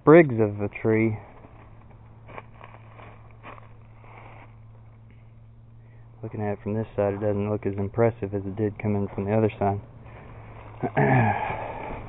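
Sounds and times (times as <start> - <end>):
steady low hum: 0.0 - 12.0
footsteps through dry leaves: 1.2 - 4.6.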